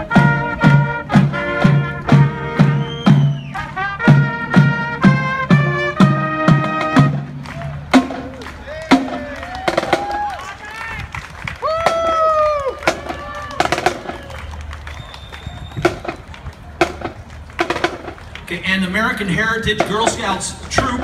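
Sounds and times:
brass chords: 0:00.0 - 0:09.2
drum strikes: 0:16.8 - 0:18.2, 0:19.6 - 0:21.0.

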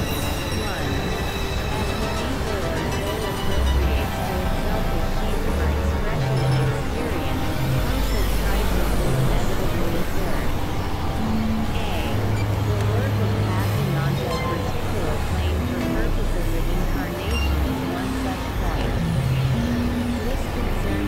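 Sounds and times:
electronic synthesizer noise music: 0:00.0 - 0:21.0.

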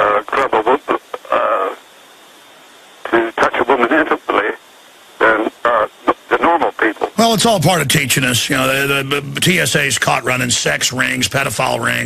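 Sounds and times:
man talking over telephone: 0:00.0 - 0:01.8, 0:03.0 - 0:04.6, 0:05.2 - 0:12.0.

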